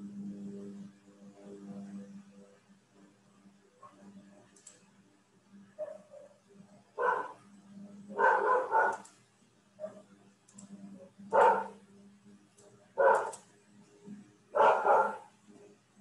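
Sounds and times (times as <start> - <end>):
dog barking: 5.8 - 6.4, 7.0 - 7.4, 8.1 - 9.1, 9.8 - 10.1, 11.3 - 11.8, 13.0 - 13.4, 14.5 - 15.3.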